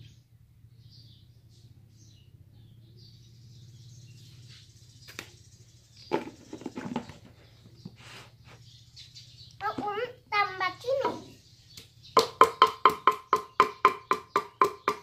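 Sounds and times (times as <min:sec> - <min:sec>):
birds chirping: 0:00.0 - 0:15.0
plastic tub lid knocking: 0:06.1 - 0:07.3.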